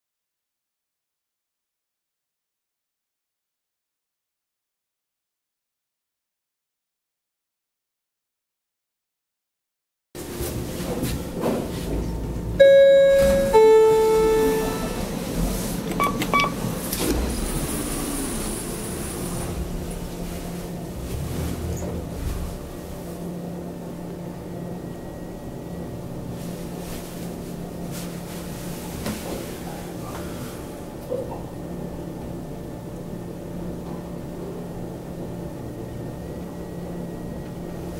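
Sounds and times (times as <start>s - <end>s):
elevator car humming: 10.4s - 37.9s
elevator two-note chime: 12.6s - 15.1s
short beeps: 12.6s - 15.1s, 16.0s - 16.6s.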